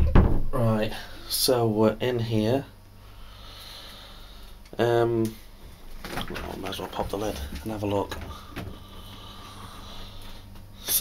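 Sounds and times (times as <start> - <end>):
freezer electrical hum: 0.0 - 11.0.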